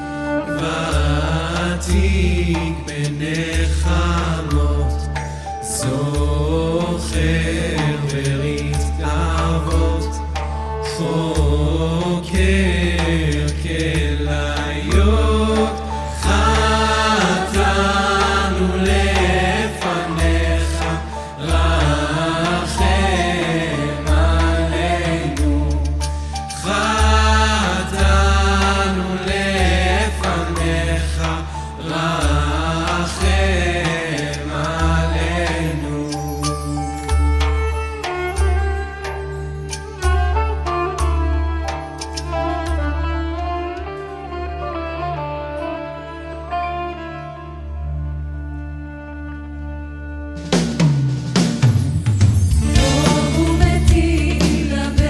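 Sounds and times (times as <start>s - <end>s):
worship band music: 0.0s - 55.0s
man singing: 0.3s - 36.9s, 52.6s - 55.0s
bass line: 37.1s - 55.0s
woman singing: 52.6s - 55.0s.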